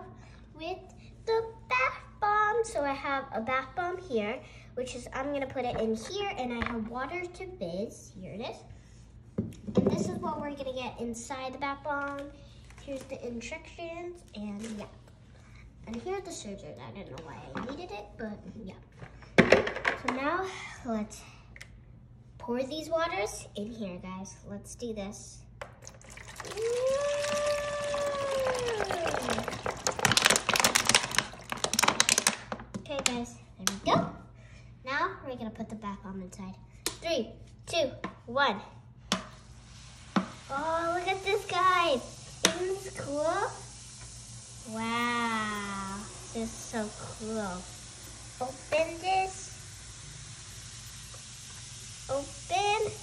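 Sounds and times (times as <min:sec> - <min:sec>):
bath bomb fizzing: 0:25.6 - 0:33.2, 0:39.1 - 0:53.0
bottles glugging: 0:25.8 - 0:30.2
water pouring into plastic bowl: 0:25.8 - 0:32.6.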